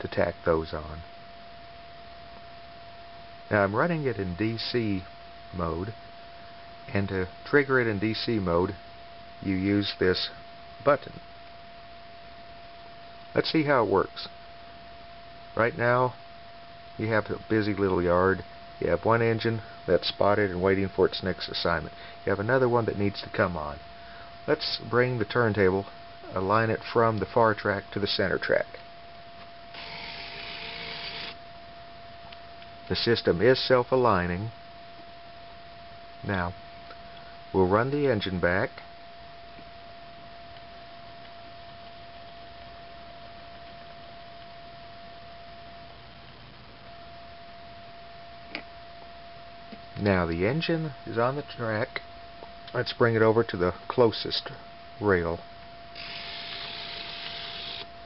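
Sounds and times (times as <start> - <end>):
small electric motor whirring: 29.7 - 31.4, 56.0 - 57.9.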